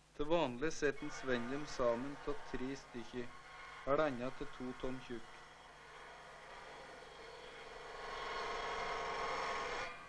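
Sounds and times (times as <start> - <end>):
table saw cutting wood: 0.9 - 10.0.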